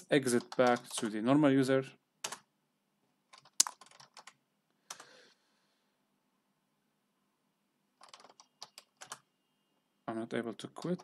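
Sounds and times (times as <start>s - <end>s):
keyboard typing: 0.3s - 1.2s, 2.2s - 2.5s, 3.3s - 5.1s, 8.0s - 9.3s, 10.7s - 11.0s.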